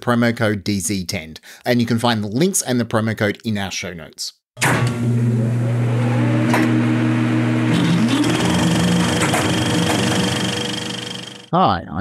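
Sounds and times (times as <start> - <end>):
buzzing droning tones: 7.7 - 11.5.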